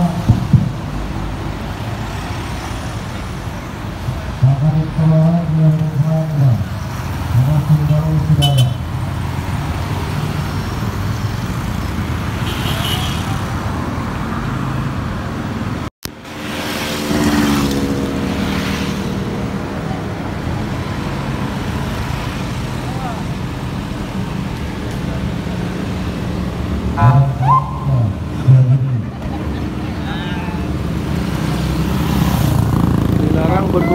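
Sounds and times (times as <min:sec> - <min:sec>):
road traffic noise: 0:00.0 - 0:33.9
vehicle engines passing: 0:00.0 - 0:33.9
crowd voices: 0:33.2 - 0:33.9.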